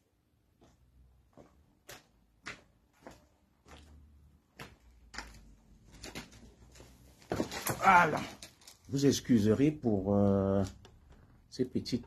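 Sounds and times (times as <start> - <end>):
rustling and handling noise: 4.7 - 9.5.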